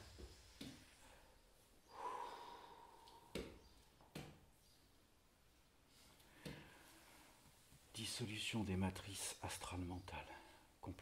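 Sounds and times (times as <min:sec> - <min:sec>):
person breathing out: 0:01.0 - 0:03.5.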